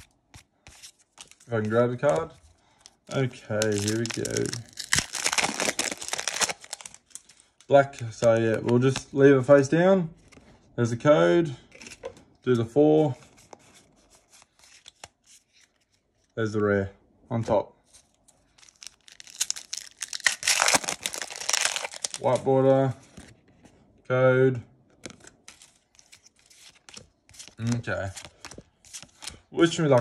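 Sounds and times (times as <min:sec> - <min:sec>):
trading cards rustling: 0:00.0 - 0:09.2, 0:17.8 - 0:23.4, 0:25.0 - 0:30.0.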